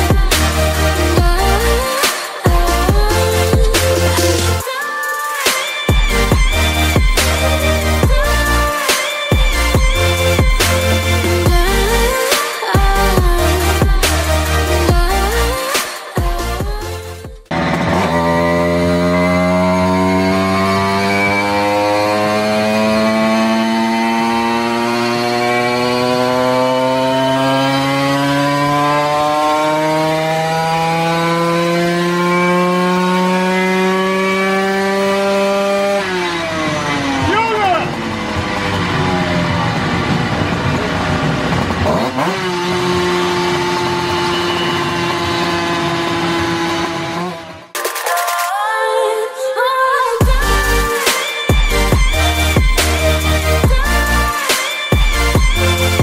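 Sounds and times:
moped engine revving: 0.0 - 47.9, 50.1 - 56.0.

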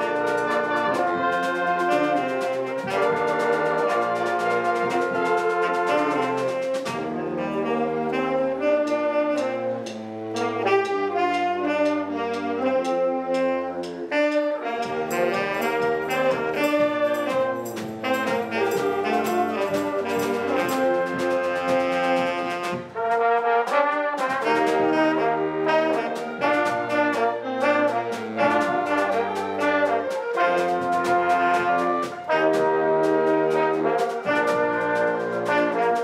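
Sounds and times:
band playing horns and drums: 0.0 - 36.0.

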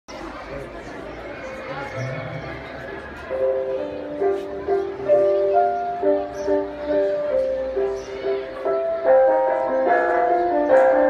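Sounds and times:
indistinct chatter: 0.1 - 11.0.

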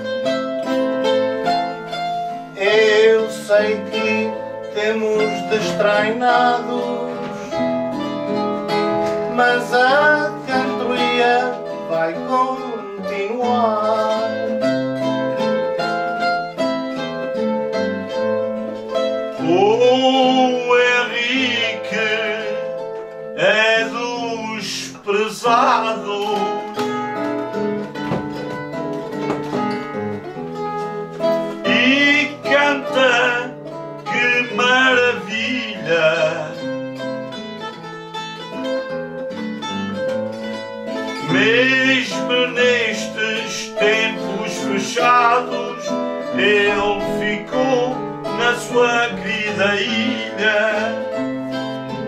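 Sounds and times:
plucked guitars playing: 0.0 - 52.0.

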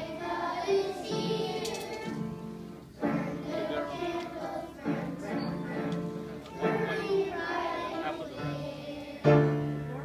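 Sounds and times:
children's choir singing: 0.0 - 9.9
instrumental accompaniment: 0.0 - 10.0.

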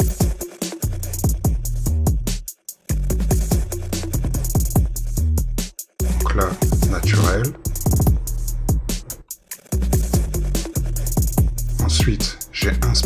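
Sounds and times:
drum machine hits: 0.0 - 2.4, 6.0 - 9.2
sub-bass notes: 1.3 - 2.3, 3.0 - 9.2, 9.8 - 13.0.

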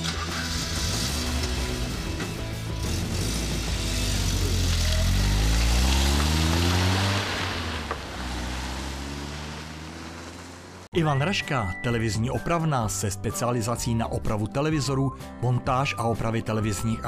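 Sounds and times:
background music: 0.0 - 7.6, 10.9 - 17.0
car engine revving: 0.0 - 10.9.

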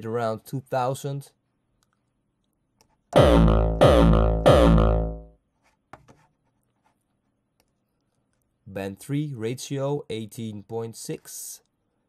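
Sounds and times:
distorted kick drum hits: 3.2 - 5.3.

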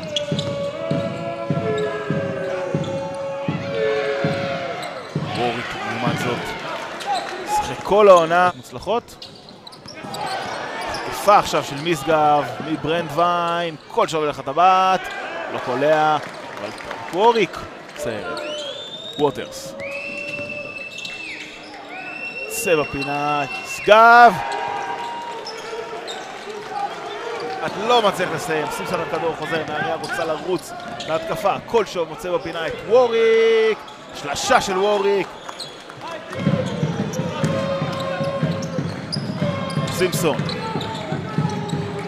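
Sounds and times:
sneakers squeaking on court: 0.0 - 3.3, 9.0 - 11.2, 20.0 - 21.9, 24.4 - 28.0, 28.8 - 31.3, 35.3 - 42.0.

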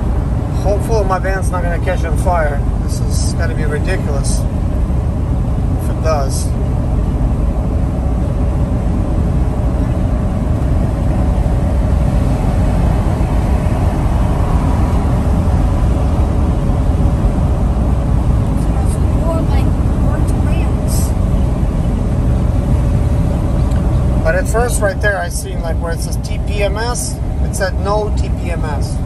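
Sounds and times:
diesel engine drone in cabin: 0.0 - 29.0
road noise: 0.0 - 29.0.

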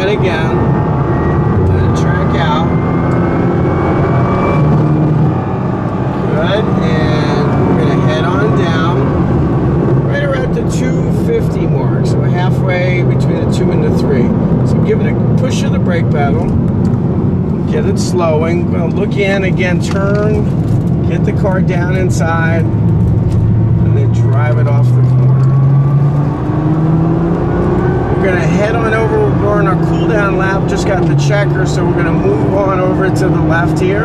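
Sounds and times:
car engine accelerating: 0.0 - 34.0.

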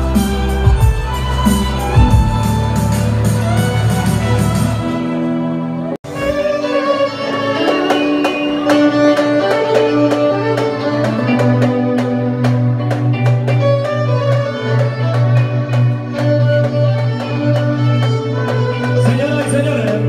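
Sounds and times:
accompaniment with steady beat: 0.0 - 5.2, 6.4 - 20.0
sustained bass line: 0.0 - 5.2
violin melody: 0.0 - 20.0.

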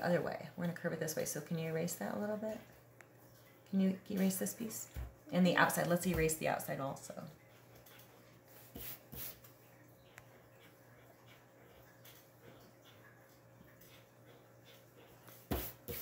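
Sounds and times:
pencil scratching on paper: 8.0 - 9.4, 14.3 - 16.0
eraser rubbing paper: 8.5 - 9.4, 15.3 - 16.0.

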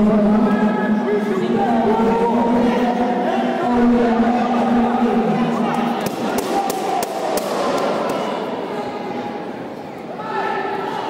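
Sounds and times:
sharp slaps ringing in a hall: 5.6 - 8.7.

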